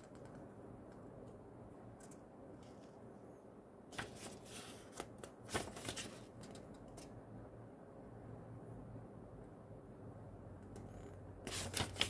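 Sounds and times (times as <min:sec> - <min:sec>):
paper leaflet rustling: 0:03.9 - 0:07.1, 0:11.5 - 0:12.0.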